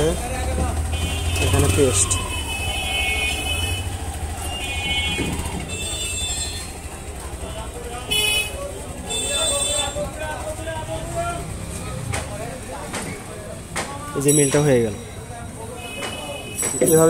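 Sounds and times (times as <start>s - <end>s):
faint voices: 0.0s - 17.0s
low traffic rumble: 0.0s - 17.0s.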